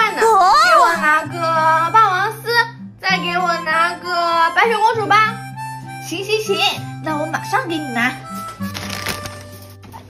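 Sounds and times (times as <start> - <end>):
background music with held notes: 0.0 - 10.0
packaging rustling: 8.3 - 10.0.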